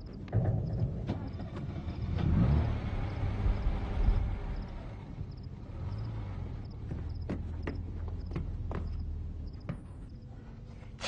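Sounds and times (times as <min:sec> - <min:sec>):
vehicle driving past: 0:01.3 - 0:08.4.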